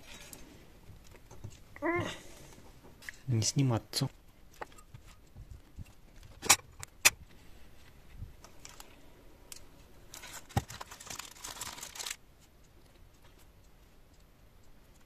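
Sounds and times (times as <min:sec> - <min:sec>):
aluminium foil crinkling: 0:08.4 - 0:12.5.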